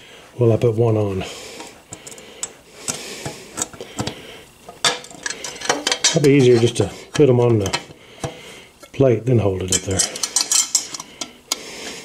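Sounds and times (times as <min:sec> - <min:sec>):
metal parts clinking and rattling: 0:02.0 - 0:02.2, 0:04.7 - 0:07.8, 0:09.7 - 0:11.2
metal clank: 0:04.7 - 0:08.4.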